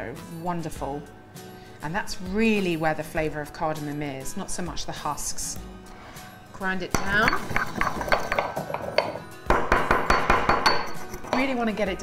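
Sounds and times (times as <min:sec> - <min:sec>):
pestle knocking in stone mortar: 0:07.0 - 0:11.5.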